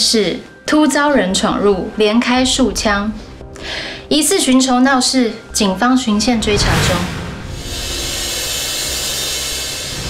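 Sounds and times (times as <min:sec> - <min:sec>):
sustained suspense chord: 0:01.1 - 0:10.0
hissing wash: 0:05.5 - 0:10.0.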